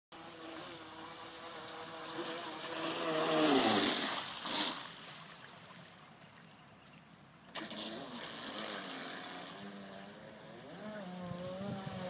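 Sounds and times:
electric motor whining faintly: 7.6s - 12.0s.

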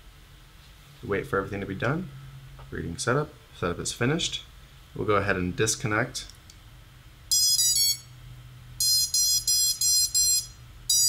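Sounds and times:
drone motors beeping: 7.3s - 8.1s, 8.8s - 11.0s.

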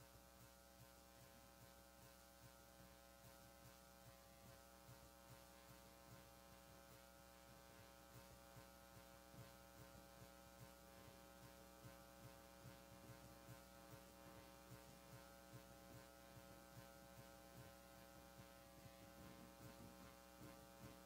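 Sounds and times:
faint electrical hum: 0.0s - 21.0s.

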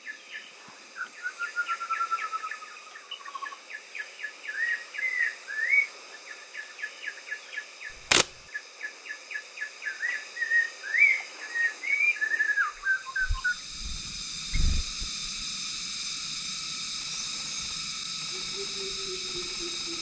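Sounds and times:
sharp click: 7.9s - 8.5s
birds chirping and whistling: 12.7s - 14.7s.

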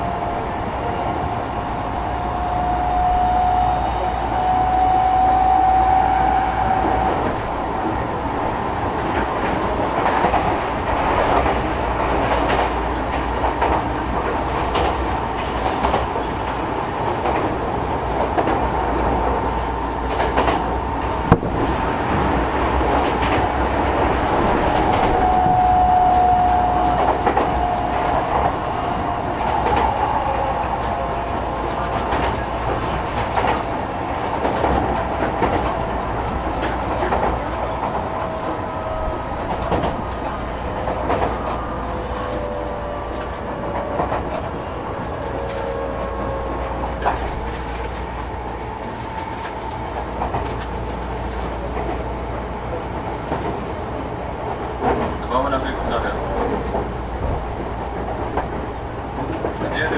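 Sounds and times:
train rolling rumble: 0.0s - 59.9s.

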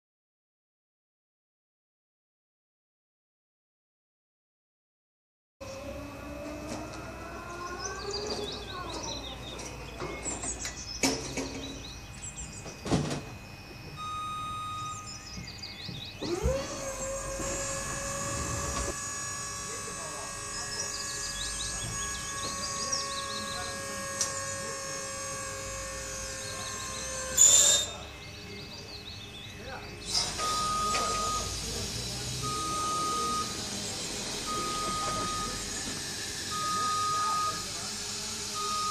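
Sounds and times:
birds chirping: 5.6s - 37.9s
hydraulic pump motor whine: 5.6s - 38.9s.

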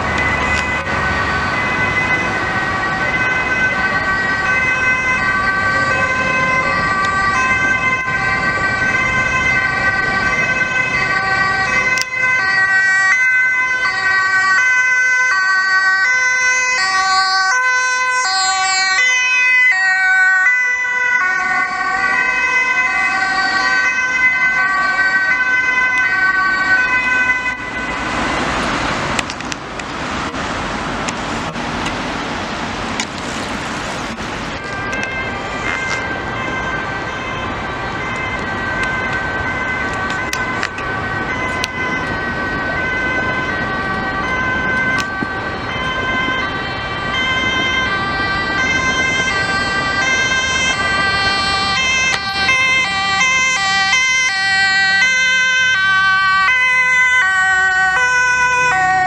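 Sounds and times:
traffic noise: 0.0s - 59.0s
two-tone ambulance siren: 0.0s - 59.0s.

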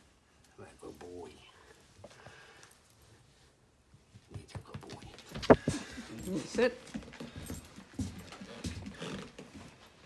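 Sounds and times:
puppy moving on hard floor: 4.1s - 10.0s.

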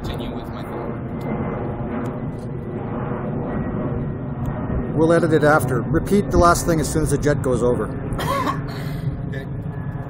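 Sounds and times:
jet aircraft rumble: 0.0s - 10.0s.

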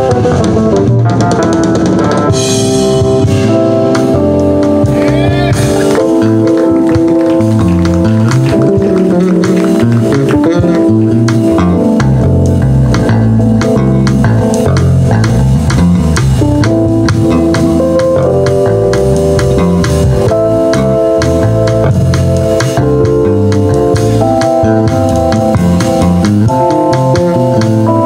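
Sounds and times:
bass guitar: 0.0s - 28.0s
drum kit: 0.0s - 28.0s
electric guitar: 0.0s - 28.0s
held keyboard chords: 0.0s - 28.0s.

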